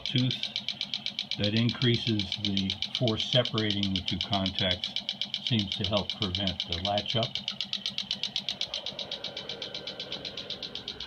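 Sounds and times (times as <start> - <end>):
rhythmic electromechanical clicking: 0.0 - 11.0.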